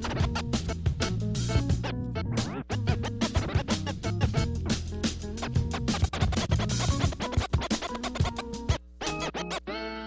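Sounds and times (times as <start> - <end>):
music: 0.0 - 10.0
turntable scratching: 0.0 - 10.0.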